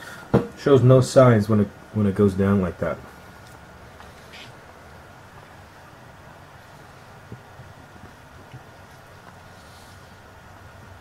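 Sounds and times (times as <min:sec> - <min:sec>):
faint background hum: 0:00.0 - 0:11.0
high steady whine: 0:00.0 - 0:11.0.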